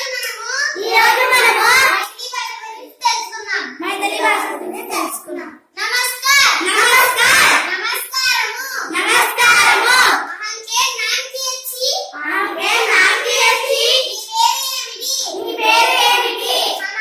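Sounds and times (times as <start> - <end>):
children reciting aloud: 0.0 - 17.0.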